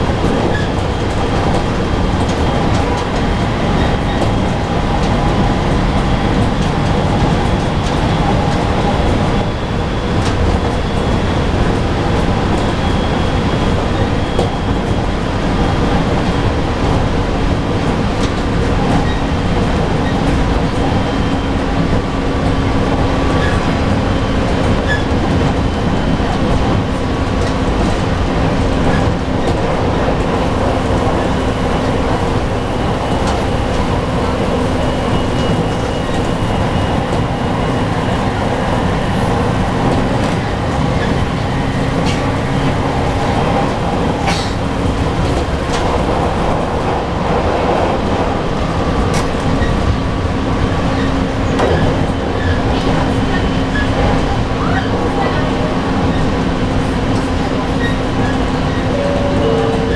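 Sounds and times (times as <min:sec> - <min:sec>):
wheels rumbling on rails: 0:00.0 - 0:59.9.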